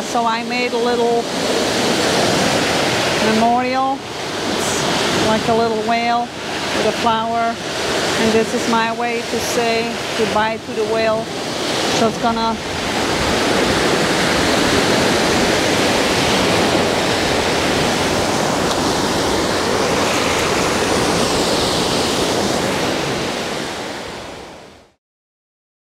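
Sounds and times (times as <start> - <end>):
waves breaking on beach: 0.0 - 25.0.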